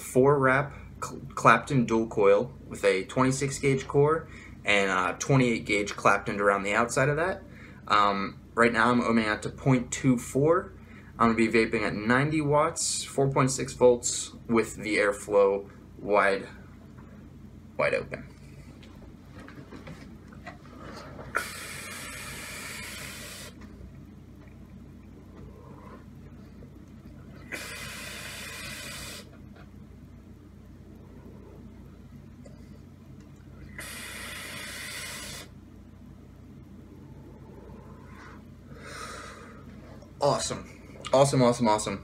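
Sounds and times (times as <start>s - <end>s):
hissing vape puffs: 21.3s - 23.6s, 27.4s - 29.4s, 33.7s - 35.6s.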